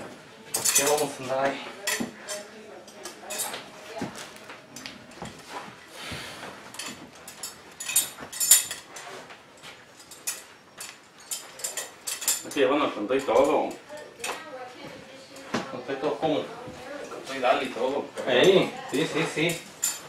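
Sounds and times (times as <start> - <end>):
metal buckles clinking: 0.5 - 1.2, 6.7 - 12.6, 19.5 - 20.0.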